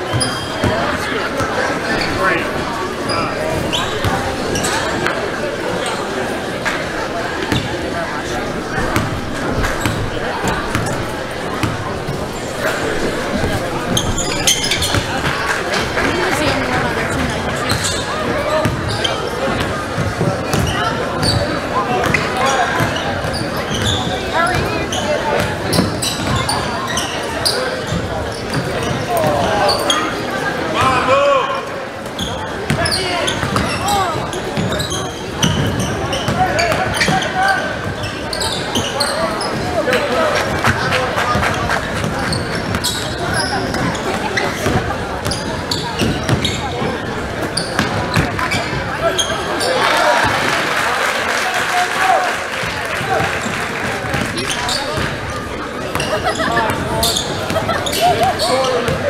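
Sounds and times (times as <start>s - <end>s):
sneakers squeaking: 0.0s - 31.1s, 32.0s - 50.5s, 52.6s - 59.0s
chatter and calls of people: 0.0s - 59.0s.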